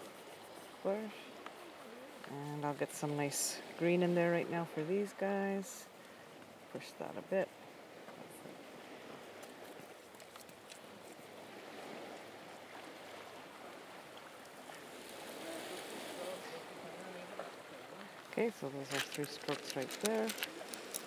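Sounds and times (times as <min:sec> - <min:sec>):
small waves on sandy beach: 0:00.0 - 0:21.0.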